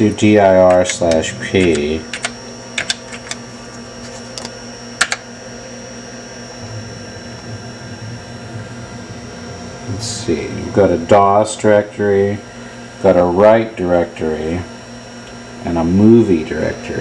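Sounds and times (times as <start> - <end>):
computer fan hum: 0.0 - 17.0
thin high whine: 0.0 - 17.0.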